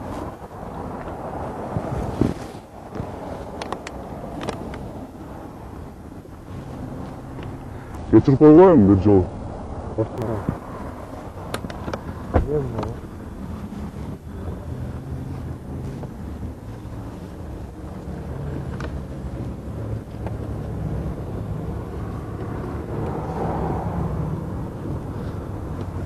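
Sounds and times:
car engine hum inside cabin: 0:00.0 - 0:26.0
faint traffic noise: 0:00.0 - 0:26.0.

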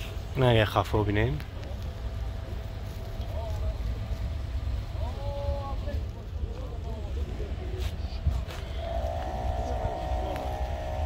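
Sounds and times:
low uneven rumble: 0:00.0 - 0:11.0
people talking: 0:00.0 - 0:11.0.

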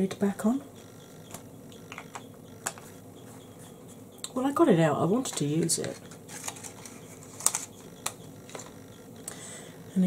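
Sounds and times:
makeup items clicking: 0:01.3 - 0:02.9, 0:05.2 - 0:09.4.

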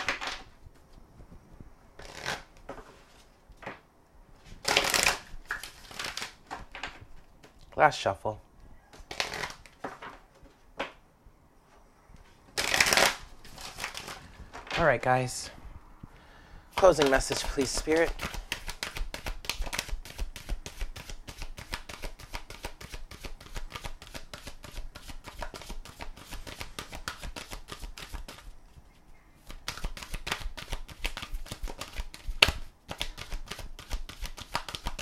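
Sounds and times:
cards being shuffled: 0:02.0 - 0:03.2, 0:04.6 - 0:06.8, 0:09.0 - 0:10.2, 0:12.5 - 0:14.2, 0:16.8 - 0:28.5, 0:29.4 - 0:35.0.

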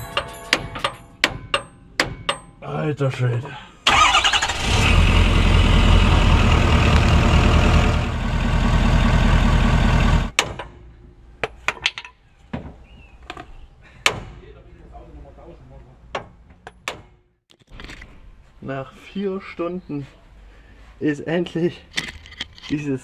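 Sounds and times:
loud pulsing engine noise: 0:04.6 - 0:10.3.

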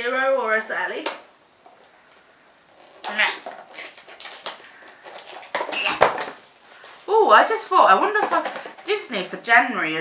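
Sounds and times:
plastic wrapper crinkling: 0:01.6 - 0:09.4.

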